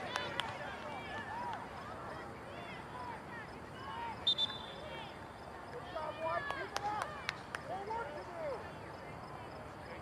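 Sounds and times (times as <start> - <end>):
people calling and talking outdoors: 0.0 - 10.0.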